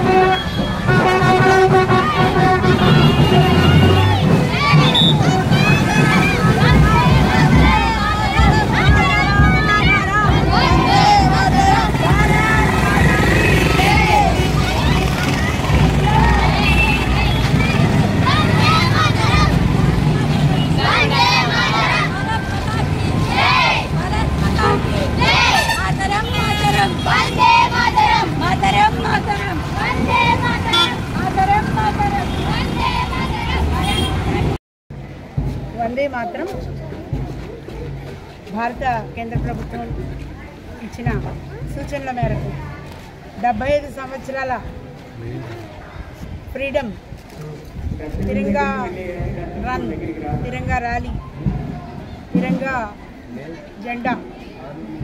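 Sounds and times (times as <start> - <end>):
children shouting and calling: 0.0 - 35.6
low street rumble: 0.0 - 55.0.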